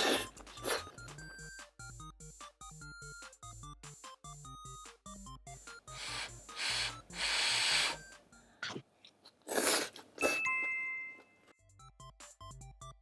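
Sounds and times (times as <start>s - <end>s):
noodles being slurped: 0.0s - 1.0s, 8.7s - 10.5s
light background music: 0.0s - 8.7s, 9.5s - 13.0s
chime-like ding: 10.2s - 11.5s.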